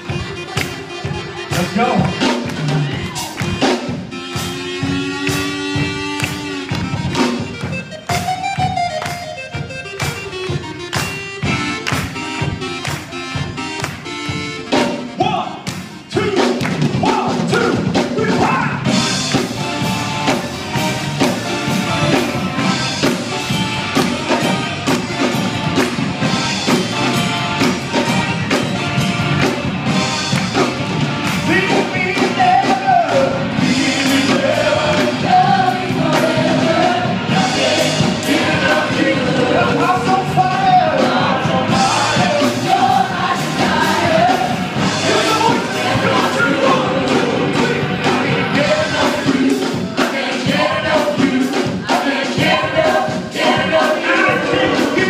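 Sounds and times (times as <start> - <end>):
live band playing worship song: 0.0 - 55.0
group singing along: 18.4 - 55.0.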